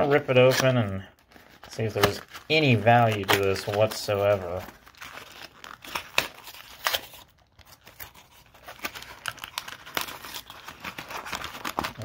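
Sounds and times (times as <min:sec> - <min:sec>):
packs crackling: 0:00.0 - 0:12.0
cardboard box tearing: 0:01.8 - 0:12.0.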